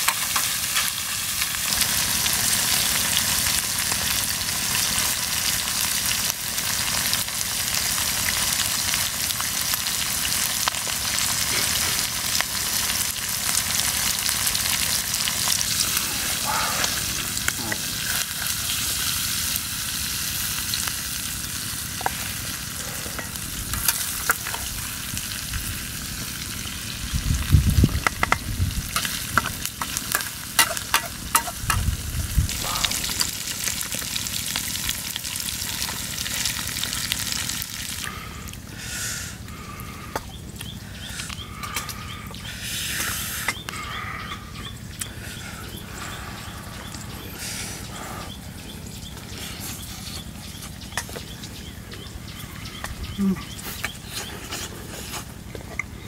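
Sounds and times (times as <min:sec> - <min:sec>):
food sizzling in a wok: 0:00.0 - 0:38.0.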